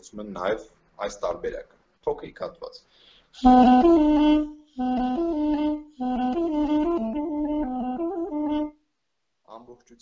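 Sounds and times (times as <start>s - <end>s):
duduk playing legato phrase: 3.4s - 8.7s.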